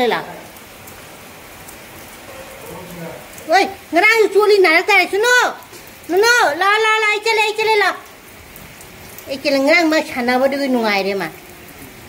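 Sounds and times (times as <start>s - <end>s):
rain on rooftops: 0.0s - 12.0s.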